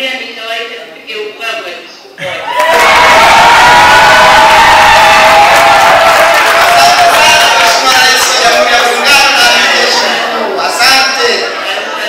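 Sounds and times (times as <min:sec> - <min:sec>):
crowd cheering and applauding: 0:02.3 - 0:08.9.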